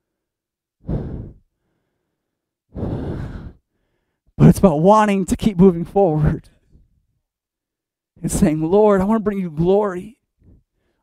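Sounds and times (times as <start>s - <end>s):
man breathing heavily: 0.0s - 4.4s, 10.4s - 11.0s.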